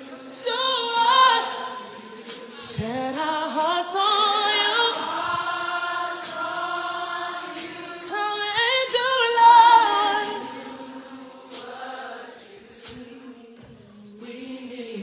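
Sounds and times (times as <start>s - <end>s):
gospel choir singing: 0.0s - 15.0s.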